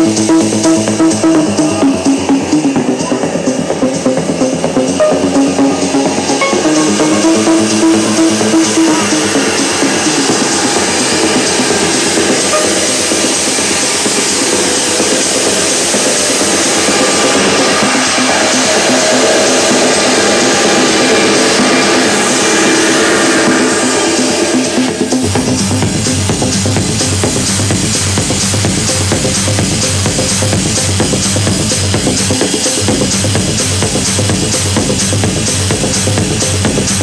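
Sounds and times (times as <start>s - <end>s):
techno dj mix beat: 0.0s - 37.0s
hissing noise swell: 1.5s - 25.3s.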